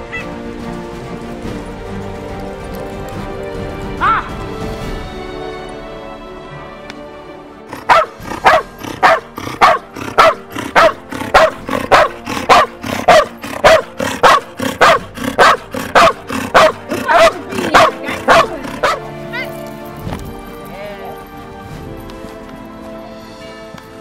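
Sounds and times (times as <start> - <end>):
background music: 0.0 - 24.0
dog barking rhythmically: 7.7 - 19.4.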